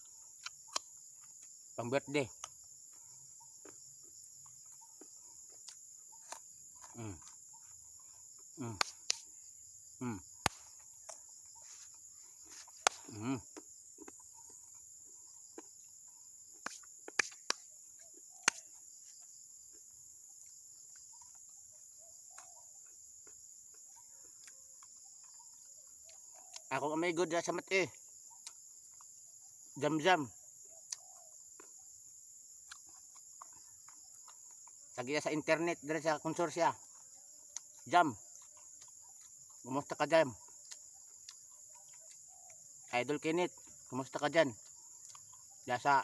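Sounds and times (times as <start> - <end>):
insect chorus: 0.0 - 46.0
man humming: 13.1 - 13.4.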